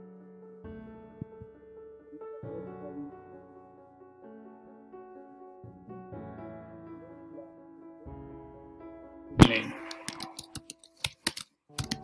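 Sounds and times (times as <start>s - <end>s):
keyboard key clicks: 9.4s - 12.0s.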